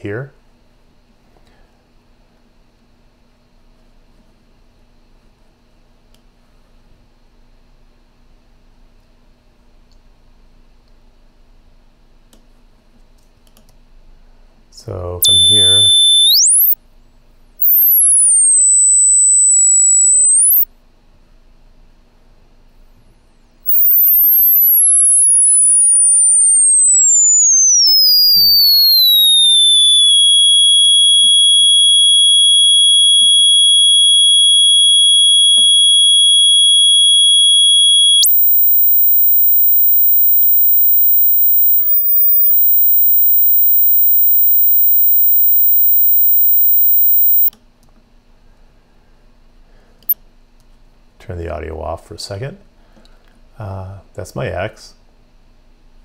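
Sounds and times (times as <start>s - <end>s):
sine tone gliding in pitch: 15.2s - 16.8s, 17.6s - 20.7s, 23.7s - 47.5s.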